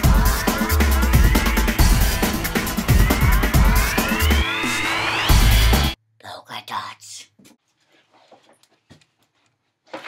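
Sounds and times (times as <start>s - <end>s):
person whispering: 6.2s - 7.4s.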